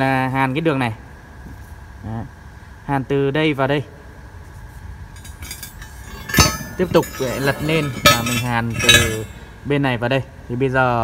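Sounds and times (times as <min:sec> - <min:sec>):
workshop background hum: 0:00.0 - 0:11.0
faint light clicks of steel: 0:05.2 - 0:09.4.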